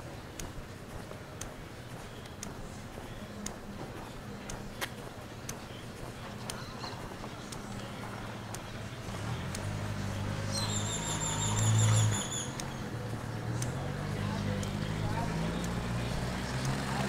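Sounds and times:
vehicle engine droning: 7.3s - 17.0s.

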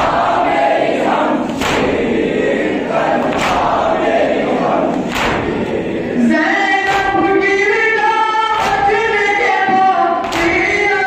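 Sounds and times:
group chest-beating: 0.0s - 7.3s, 8.5s - 9.2s, 10.2s - 10.9s
men chanting in unison: 0.0s - 11.0s.

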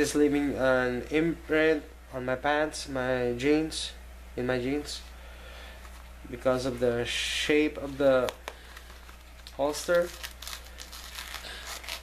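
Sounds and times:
fabric holster crinkling: 7.8s - 12.0s.

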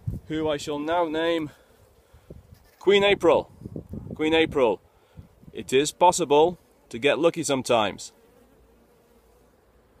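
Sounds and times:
honeybees buzzing: 0.0s - 4.0s, 4.8s - 10.0s.

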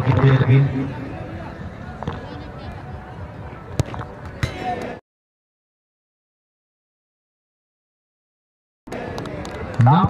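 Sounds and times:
crowd noise: 0.0s - 5.0s, 8.9s - 10.0s.

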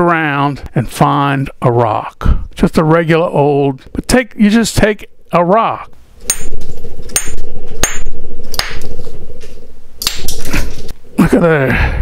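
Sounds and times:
stone striking stone with clinking ring: 6.3s - 8.8s.

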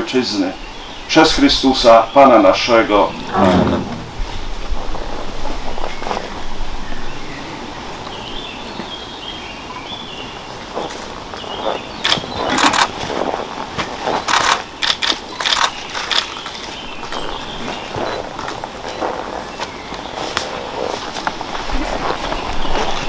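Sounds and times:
forest ambience: 0.0s - 23.0s
rustling and shuffling: 2.7s - 6.5s, 10.6s - 14.6s, 15.8s - 23.0s.

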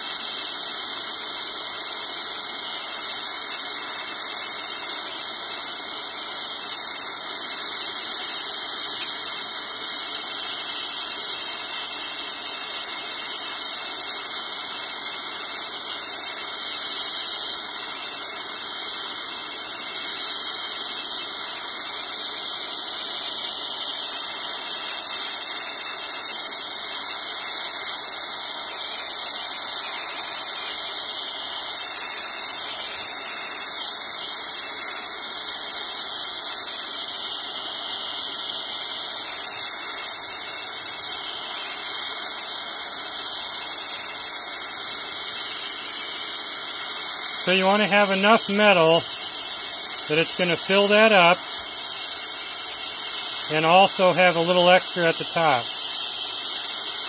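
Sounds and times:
gas torch flame hissing: 0.0s - 57.0s.

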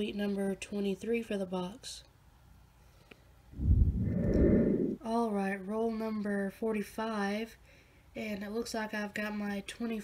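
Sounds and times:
breath blowing into microphone: 3.6s - 5.0s.

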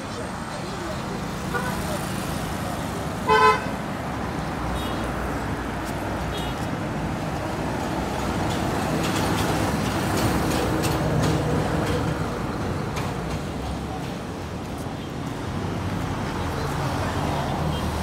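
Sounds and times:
street traffic: 0.0s - 18.0s
vehicle horn toot: 3.3s - 3.7s.

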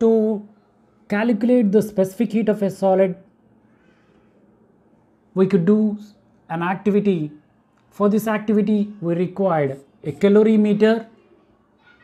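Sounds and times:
man speaking: 0.0s - 3.3s, 5.3s - 11.2s.

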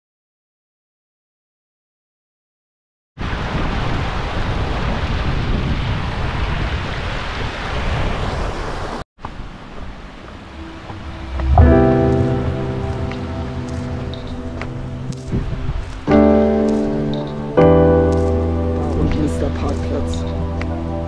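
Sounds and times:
music with sustained tones: 10.4s - 21.0s.

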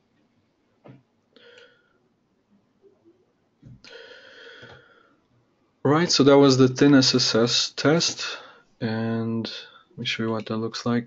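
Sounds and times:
person breathing near microphone: 1.4s - 2.0s, 3.8s - 5.3s, 8.2s - 8.8s.

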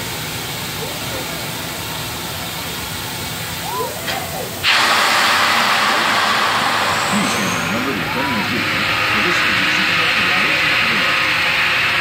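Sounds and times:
people's voices: 0.4s - 12.0s
compressed air hissing: 4.5s - 12.0s.

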